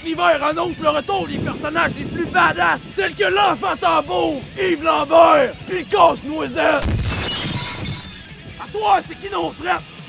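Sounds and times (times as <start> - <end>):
music: 0.0 - 10.0
shattering crash: 6.8 - 8.4.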